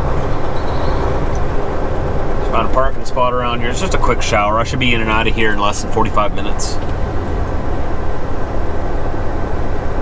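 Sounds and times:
road noise: 0.0s - 10.0s
truck diesel engine drone: 0.0s - 10.0s.

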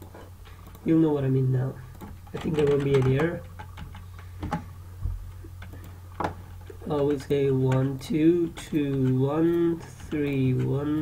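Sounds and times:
keyboard keystrokes: 1.9s - 4.6s.

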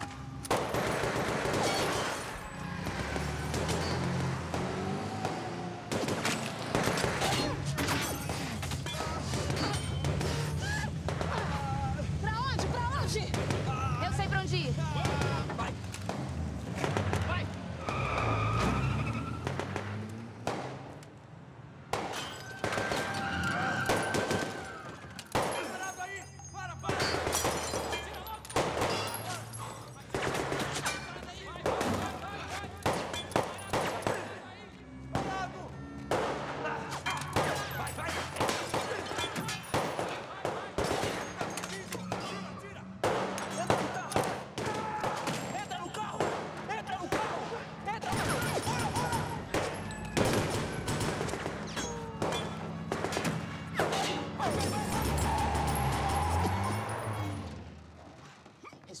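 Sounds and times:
gunshots: 0.0s - 11.8s, 12.6s - 14.1s, 15.0s - 18.8s, 19.4s - 21.0s, 21.9s - 26.0s, 26.8s - 56.7s
voices shouting: 22.4s - 57.5s.

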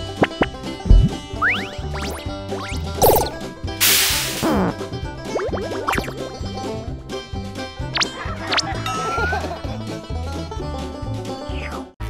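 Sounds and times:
falling tone: 0.0s - 3.4s
background music: 0.0s - 12.0s.

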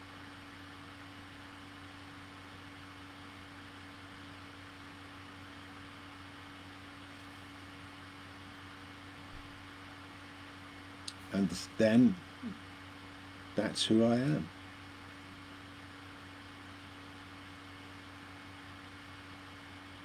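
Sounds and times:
steady humming tone: 0.0s - 20.0s
even hiss: 11.1s - 12.6s.

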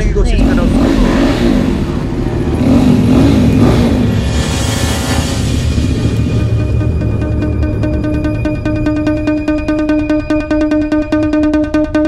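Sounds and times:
small engine revving: 0.4s - 6.6s.

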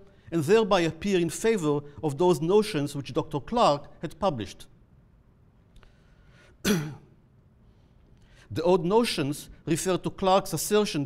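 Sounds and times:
man clearing throat: 6.6s - 7.2s.

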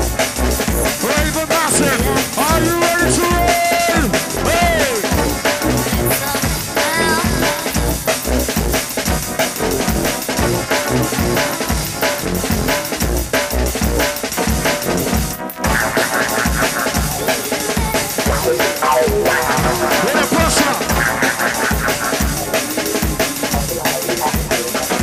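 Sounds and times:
heavy deep bass: 0.0s - 15.9s, 17.8s - 22.5s
breakbeat drums: 0.0s - 25.0s.

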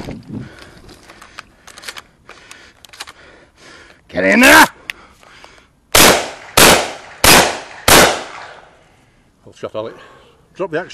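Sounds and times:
gunshots with echo: 6.0s - 8.7s.

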